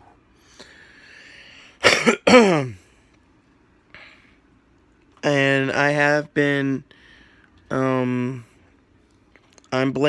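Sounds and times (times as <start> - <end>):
man coughing: 1.8 - 2.9.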